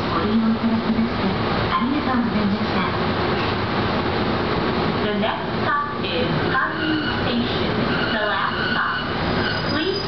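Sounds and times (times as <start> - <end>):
recorded announcement voice: 0.0 - 3.0, 5.0 - 9.1
train wheels rumbling: 0.0 - 10.0.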